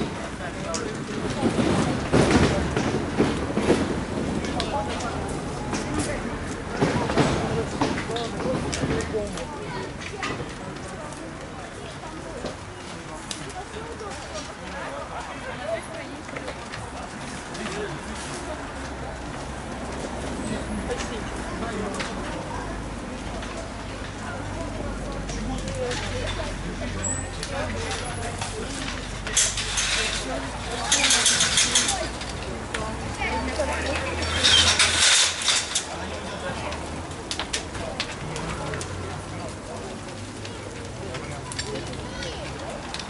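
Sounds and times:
distant people talking: 0.0 - 43.0
fire cracking and popping: 0.0 - 43.0.

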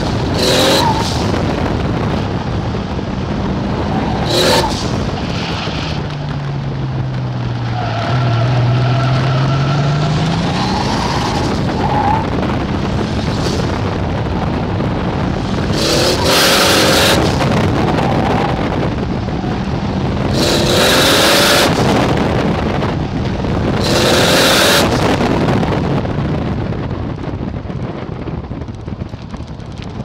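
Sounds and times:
car engine pulling hard: 0.0 - 27.4
tyre and wind rush: 0.0 - 30.0.

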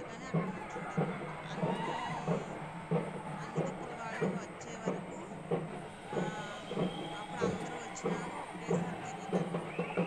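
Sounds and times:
continuous noisy background: 0.0 - 10.0.

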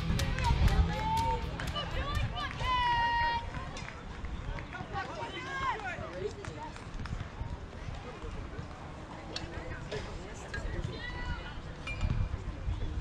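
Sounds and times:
steady low rumble: 0.0 - 3.6
shouts and chatter of crowd: 0.0 - 6.3, 10.6 - 11.8.

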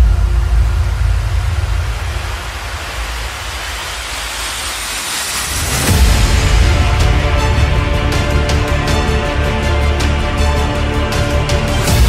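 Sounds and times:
rumbling rush of noise: 0.0 - 12.0
music: 5.3 - 12.0.

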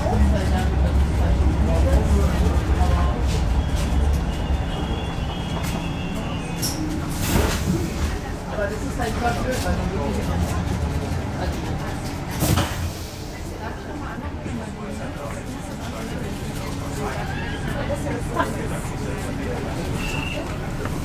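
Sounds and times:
train running rumble: 0.0 - 17.2
train car background hum: 0.0 - 21.0.

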